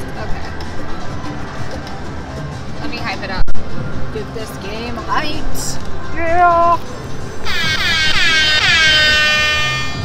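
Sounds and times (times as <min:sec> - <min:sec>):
air horn blasts sliding down: 0:07.4 - 0:10.0.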